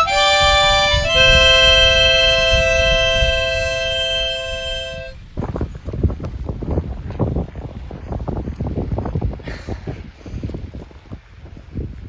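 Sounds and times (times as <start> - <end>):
harmonica chord: 0.0 - 5.2
wind buffeting microphone: 0.0 - 12.0.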